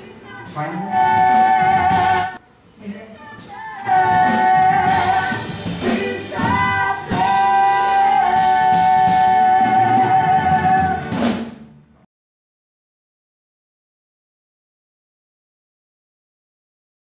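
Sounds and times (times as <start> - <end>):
rock singing with band: 3.4 - 11.3.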